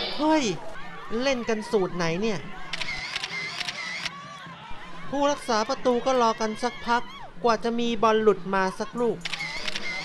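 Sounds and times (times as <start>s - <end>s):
children shouting and crying: 0.0s - 7.5s
crowd noise: 0.0s - 10.0s
sharp clicks: 2.7s - 4.1s.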